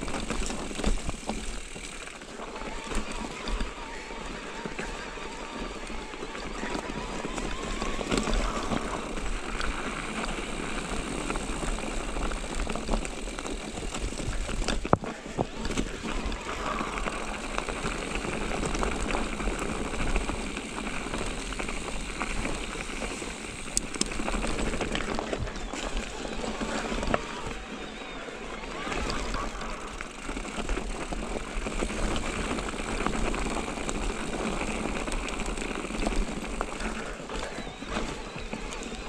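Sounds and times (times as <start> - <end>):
bike frame rattling: 0.0 - 27.8, 28.6 - 39.0
bike tyres on rocky trail: 0.0 - 39.0.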